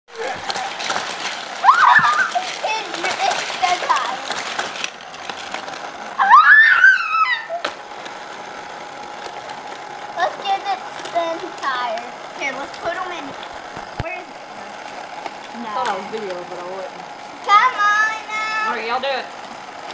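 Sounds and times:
plastic toy track clicking: 0.1 - 6.0, 9.2 - 14.2, 14.8 - 16.8
children calling out: 1.6 - 4.2, 6.2 - 7.7.

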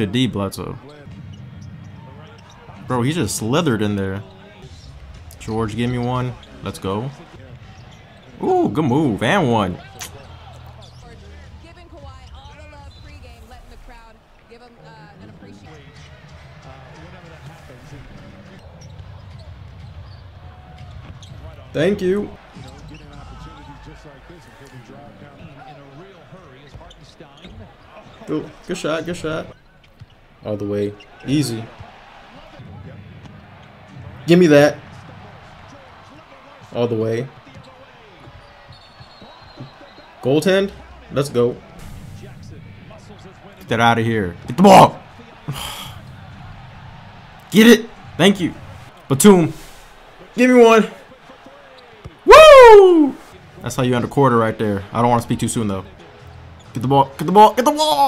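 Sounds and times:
announcers commentating: 0.0 - 19.4, 20.6 - 29.6, 30.2 - 58.0
arena crowd noise: 0.0 - 58.0
sneaker squeaks: 7.6 - 8.4, 9.8 - 11.3, 18.6 - 21.5, 22.4 - 23.8, 26.6 - 28.6, 29.5 - 32.2, 37.3 - 40.2.

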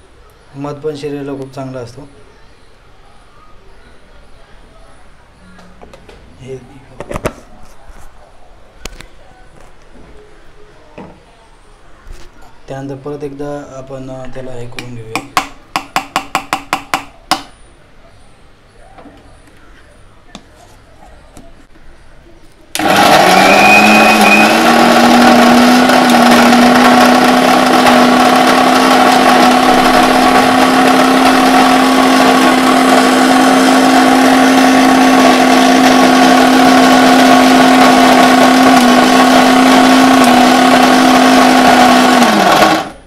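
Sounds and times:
mixer grinder running: 22.7 - 43.0.

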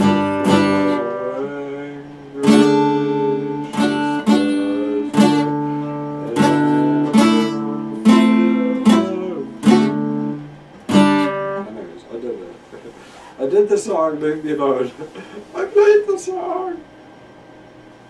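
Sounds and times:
acoustic guitar strummed chords: 0.0 - 11.9.

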